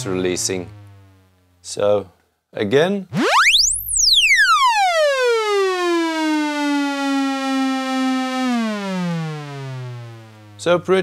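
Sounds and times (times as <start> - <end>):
synthesizer tone gliding down: 0.0 - 1.4, 3.1 - 10.7.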